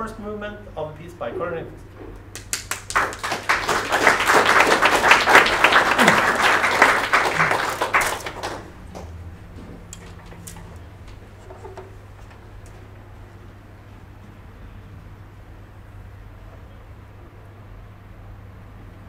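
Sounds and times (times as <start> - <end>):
steady low hum: 0.0 - 19.0
audience applauding: 2.4 - 9.2.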